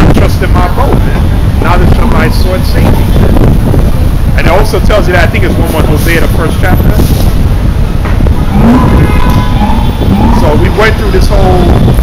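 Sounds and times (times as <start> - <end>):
street traffic: 0.0 - 12.0
wind buffeting microphone: 0.0 - 12.0.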